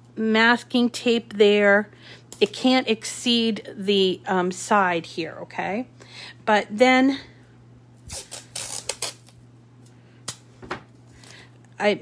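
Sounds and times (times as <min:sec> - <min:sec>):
masking tape ripping and rustling: 0:08.0 - 0:09.4.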